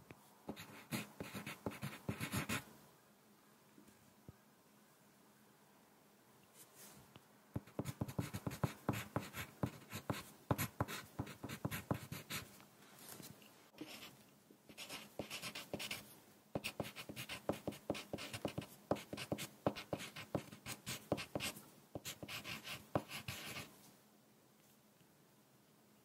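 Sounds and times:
pencil writing on paper: 0.5s - 2.6s, 7.6s - 12.5s, 13.8s - 14.1s, 14.7s - 16.0s, 16.6s - 23.7s.

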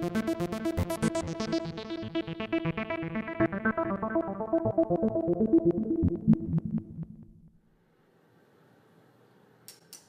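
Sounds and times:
synth piano repeating sequence: 0.0s - 7.6s.

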